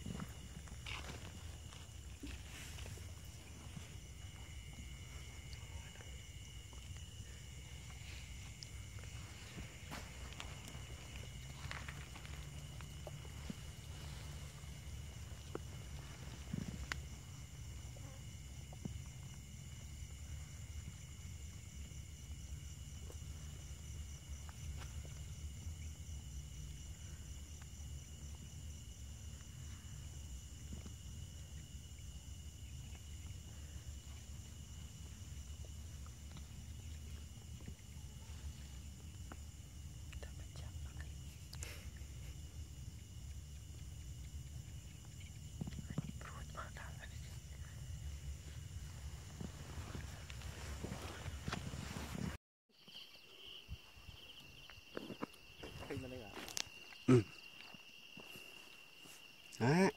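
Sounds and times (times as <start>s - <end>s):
insects trilling: 0.0s - 59.9s
faint rustles and clicks: 45.2s - 52.4s.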